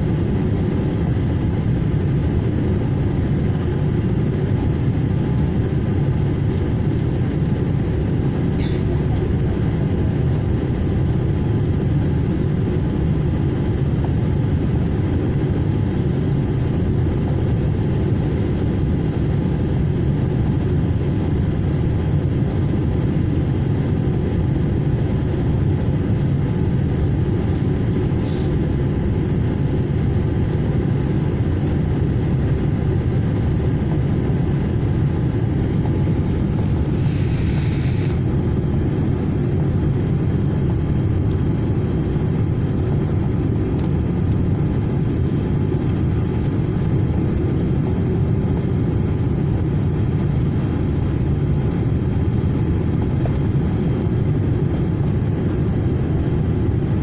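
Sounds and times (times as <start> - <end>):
airplane cabin engine rumble: 0.0 - 57.0
short high hissing sounds: 27.4 - 28.5.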